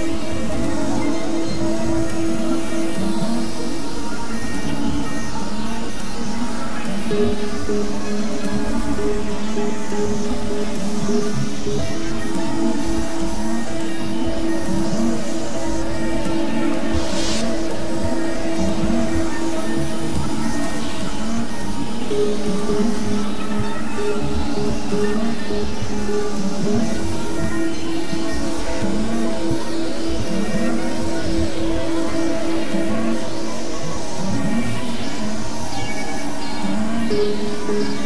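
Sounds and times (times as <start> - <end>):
synthesizer drone music: 0.0 - 38.0.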